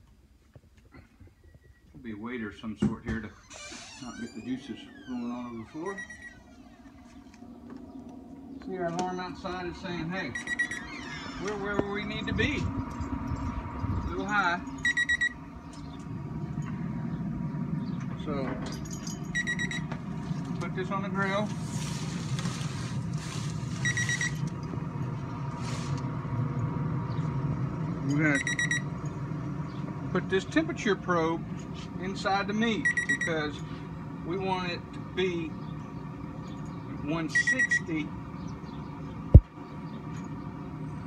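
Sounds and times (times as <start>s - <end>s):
steady low hum: 0.0s - 41.0s
electronic alarm beep: 5.8s - 6.5s, 10.3s - 11.0s, 14.8s - 15.4s, 19.4s - 19.9s, 23.8s - 24.4s, 28.3s - 28.9s, 32.8s - 33.4s, 37.3s - 37.9s
foil pan rustling and scraping: 21.4s - 24.4s.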